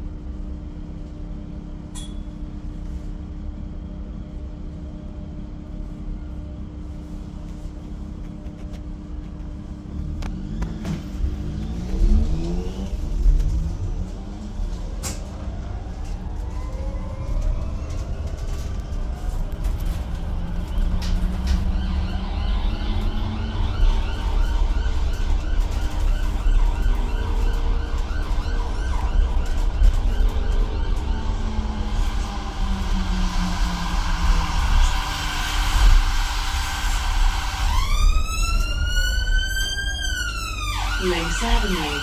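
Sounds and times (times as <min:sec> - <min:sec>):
electric bus rumble: 0:00.0 - 0:42.0
emergency siren wailing: 0:11.4 - 0:42.0.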